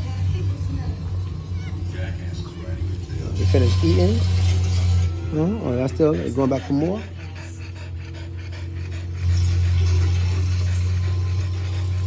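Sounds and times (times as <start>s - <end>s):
dog panting: 0.0s - 12.0s
steady low hum: 0.0s - 12.0s.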